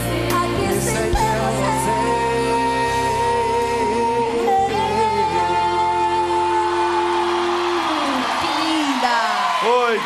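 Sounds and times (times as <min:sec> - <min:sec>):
man and woman singing duet: 0:00.0 - 0:08.2
crowd whooping and cheering: 0:06.2 - 0:10.0.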